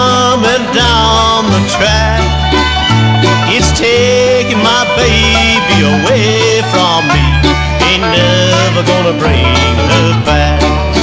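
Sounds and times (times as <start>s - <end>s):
banjo: 0.0s - 11.0s
bass stepping between low notes: 0.0s - 11.0s
guitar: 0.0s - 11.0s
sliding melody line: 0.0s - 11.0s.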